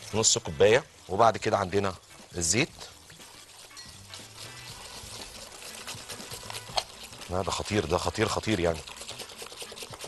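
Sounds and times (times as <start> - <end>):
oil pouring: 0.0 - 10.0
wire whisk beating batter: 0.0 - 10.0
whisk clinking against glass: 1.0 - 10.0.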